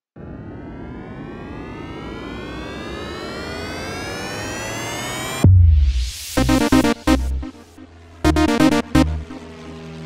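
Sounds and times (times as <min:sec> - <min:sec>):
cartoon jet engine whine: 0:00.2 - 0:10.0.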